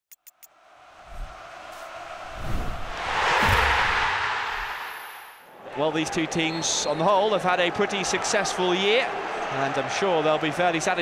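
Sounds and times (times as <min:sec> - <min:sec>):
rising whoosh: 0:02.3 - 0:05.4.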